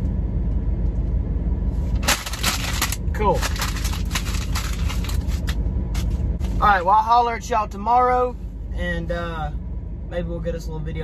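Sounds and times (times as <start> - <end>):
truck engine idling: 0.1 - 10.8.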